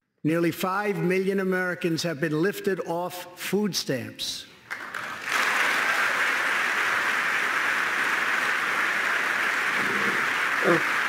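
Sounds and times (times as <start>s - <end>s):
audience applause: 4.7s - 11.0s.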